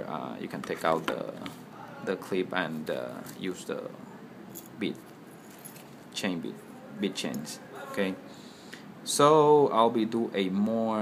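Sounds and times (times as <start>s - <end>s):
metal ball chain jingling: 4.5s - 6.0s.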